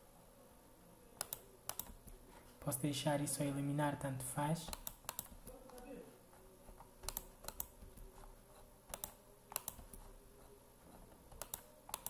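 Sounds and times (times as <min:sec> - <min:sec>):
computer mouse and keyboard clicks: 0:01.2 - 0:02.2, 0:04.7 - 0:05.9, 0:06.6 - 0:10.2, 0:10.9 - 0:12.0.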